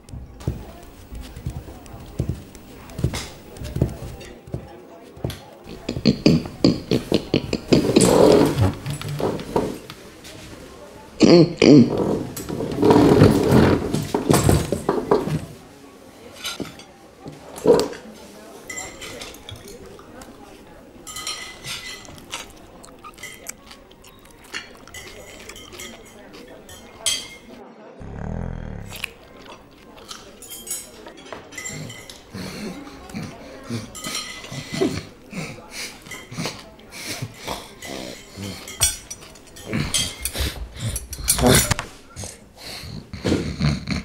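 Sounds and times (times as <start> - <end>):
shuffling and knocks: 0.0 - 10.6
tableware clinking: 0.4 - 4.6, 18.6 - 20.2, 21.0 - 27.6, 29.4 - 42.0
person clearing throat: 5.7 - 8.7, 11.2 - 12.0, 40.9 - 44.0
animal-like vocal noises: 28.0 - 29.5.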